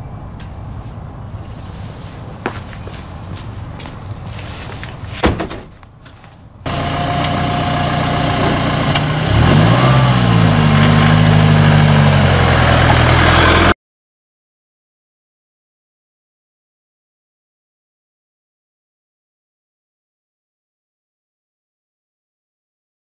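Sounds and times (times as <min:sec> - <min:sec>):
loud thud: 0:05.2 - 0:05.7
van engine revving: 0:06.6 - 0:13.8.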